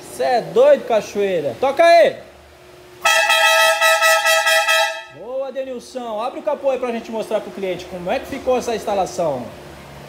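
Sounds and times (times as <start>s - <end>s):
air horn chord: 3.0s - 5.2s.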